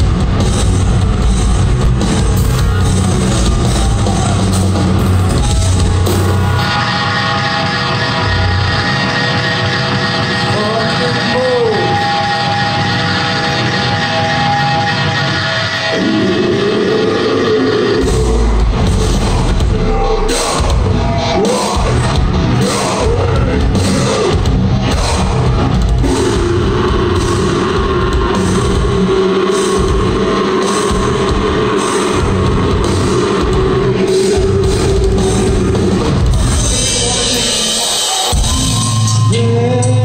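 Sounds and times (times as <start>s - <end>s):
bass and drums: 0.0s - 40.0s
distorted guitars: 0.0s - 40.0s.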